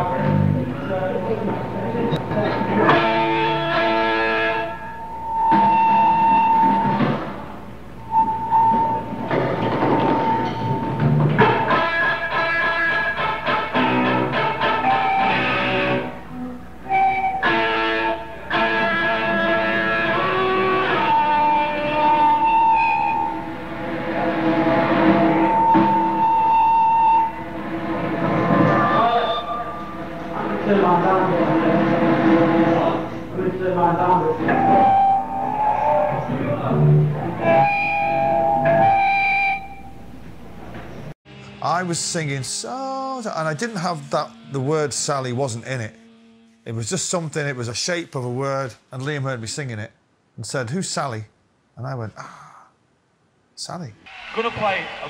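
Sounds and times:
electric guitars: 0.0s - 7.5s, 8.1s - 41.5s
drums: 5.3s - 16.1s, 16.8s - 33.4s, 34.3s - 39.6s.

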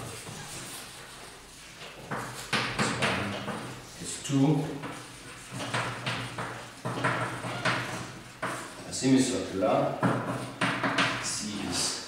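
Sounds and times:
chalk scratching on chalkboard: 0.0s - 9.5s
chalk tapping on chalkboard: 0.0s - 11.9s.

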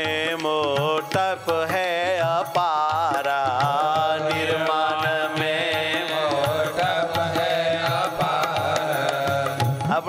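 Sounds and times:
instrumental accompaniment: 0.0s - 10.0s
man singing devotional song: 0.0s - 10.0s
steady percussion beat: 0.0s - 10.0s.

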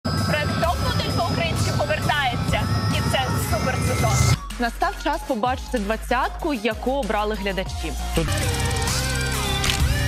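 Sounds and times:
helicopter engine and rotor drone: 0.1s - 4.3s
woman talking: 0.3s - 7.8s.

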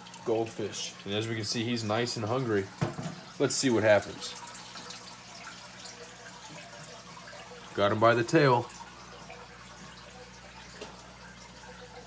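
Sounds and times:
water trickling and dripping: 0.0s - 12.0s.

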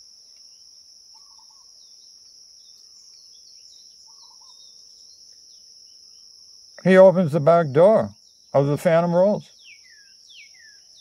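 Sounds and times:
faint bird chirps: 0.0s - 11.0s
insects droning: 0.0s - 11.0s.

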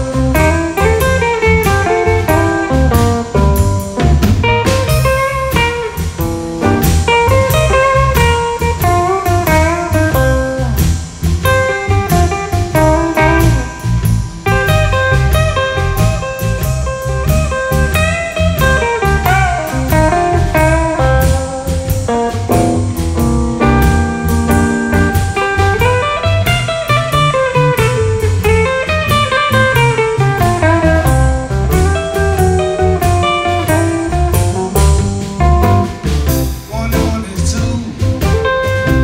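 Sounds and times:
drum kit steady beat: 0.0s - 39.0s
lead electric guitar: 0.0s - 39.0s
second electric guitar: 0.0s - 39.0s.

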